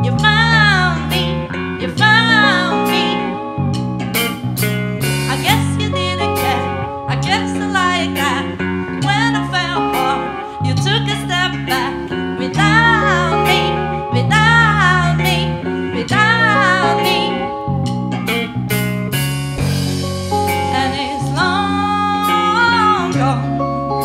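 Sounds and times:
woman singing with vibrato: 0:00.0 - 0:03.8, 0:05.3 - 0:17.8, 0:20.4 - 0:23.7
electric guitars: 0:00.0 - 0:24.0
drum kit beat: 0:02.1 - 0:06.7, 0:17.9 - 0:22.7.

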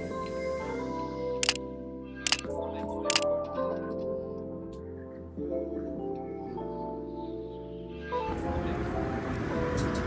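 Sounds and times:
background music sustained chords: 0:00.0 - 0:10.0.

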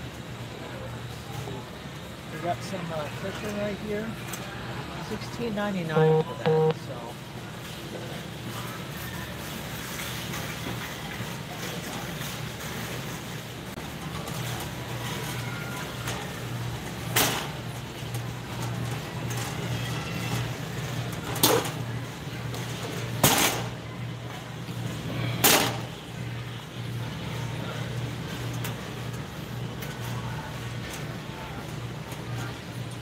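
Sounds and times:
store background hum: 0:00.0 - 0:33.0
shopping cart rolling: 0:07.6 - 0:33.0.

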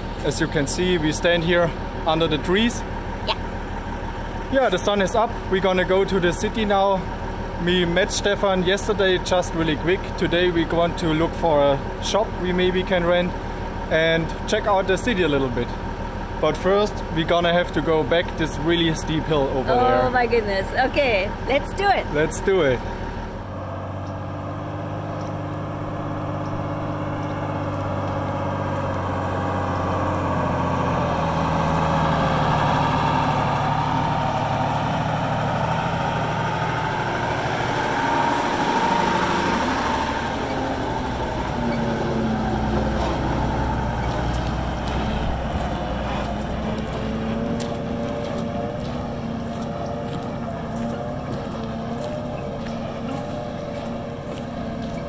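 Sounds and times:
diesel truck engine under load: 0:00.0 - 0:55.0.

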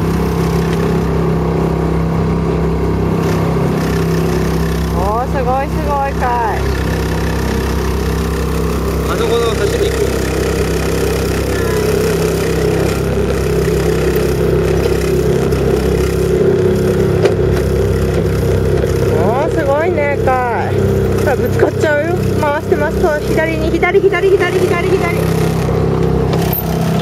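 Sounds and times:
motorboat engine running: 0:00.0 - 0:27.0.

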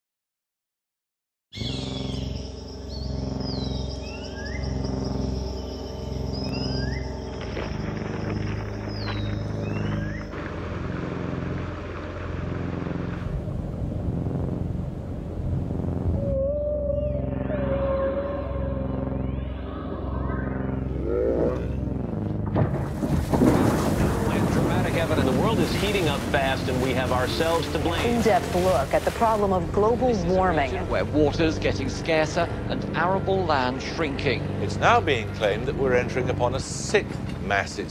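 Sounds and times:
bird calls: 0:01.6 - 0:10.3
ambient music drone: 0:01.6 - 0:37.9
water rushing: 0:07.4 - 0:15.4, 0:22.6 - 0:37.9
whale-like call: 0:16.0 - 0:22.0
glacier ice crashing: 0:22.6 - 0:29.4.

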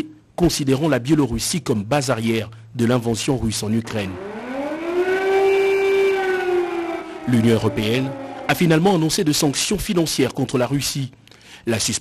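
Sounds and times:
air-raid siren blaring: 0:03.8 - 0:09.2.

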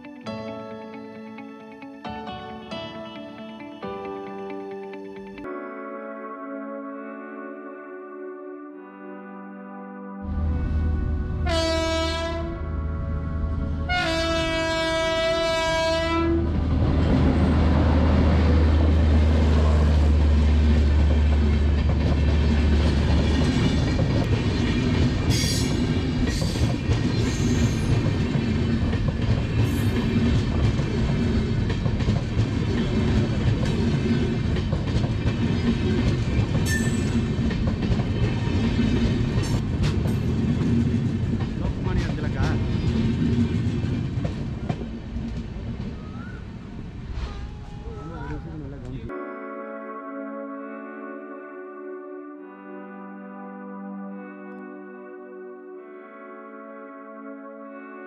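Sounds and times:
train horn: 0:09.2 - 0:18.6
train wheels clattering on rail joints: 0:21.0 - 0:45.6.

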